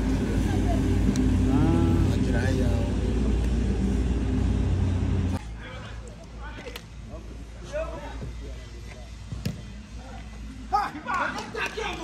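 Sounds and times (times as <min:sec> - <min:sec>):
low rumble: 0:00.0 - 0:05.4.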